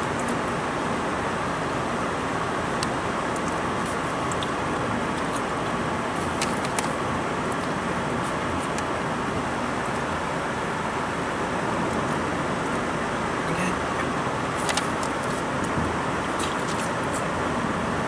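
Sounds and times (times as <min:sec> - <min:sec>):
car road and engine noise: 0:00.0 - 0:18.0.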